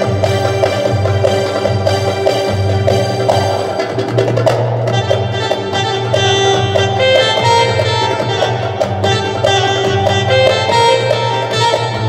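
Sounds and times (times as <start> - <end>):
electronic keyboard melody: 0.0 - 12.0
steady bass line: 0.0 - 12.0.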